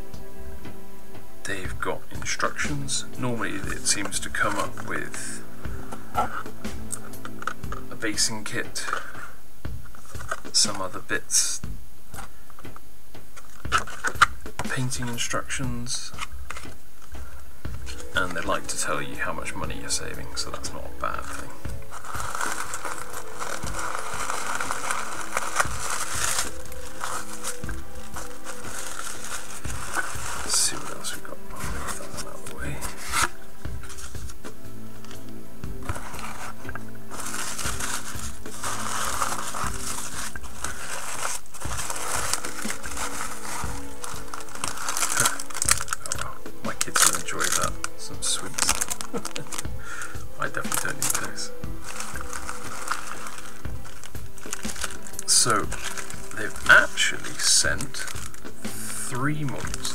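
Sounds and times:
background music: 0.0 - 59.9
packing material crinkling: 2.5 - 6.5, 10.0 - 11.0, 13.4 - 15.2, 17.8 - 34.4, 35.8 - 59.9.

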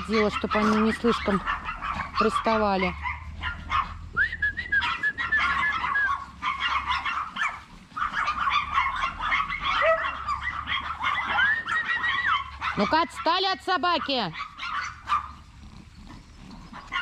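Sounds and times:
dog whining: 0.0 - 13.0
small dogs yapping and barking: 0.0 - 17.0.

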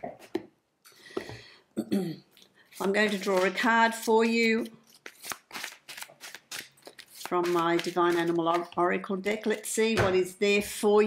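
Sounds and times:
cards being shuffled: 2.7 - 8.8.

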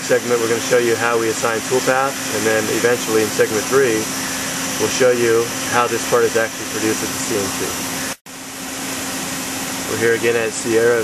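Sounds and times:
mechanical hum and hiss: 0.0 - 11.0.

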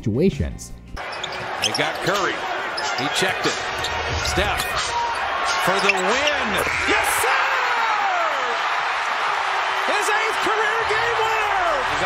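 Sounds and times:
crowd roaring: 1.0 - 12.0
crowd shouts and whoops: 1.0 - 12.0.

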